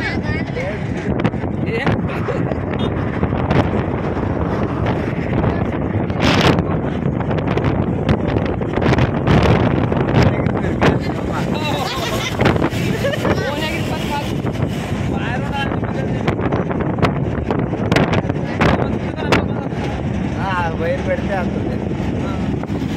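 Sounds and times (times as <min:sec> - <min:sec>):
voices talking: 0:00.0 - 0:03.9, 0:09.9 - 0:16.8
truck rumble and tyres on road: 0:00.0 - 0:22.9
wind buffeting microphone: 0:00.0 - 0:22.9.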